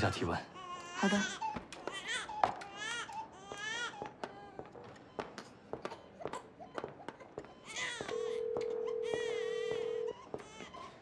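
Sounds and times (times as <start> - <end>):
steady telephone tone: 8.1 - 10.2.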